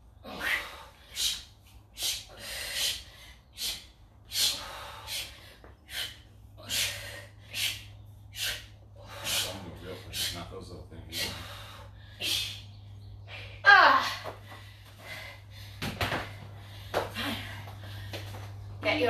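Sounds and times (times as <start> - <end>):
people breathing hard: 0.1 - 18.7.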